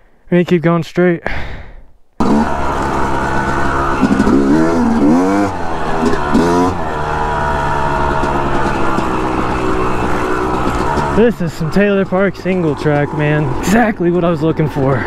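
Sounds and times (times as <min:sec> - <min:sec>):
dirt bike engine revving: 0:02.2 - 0:15.0.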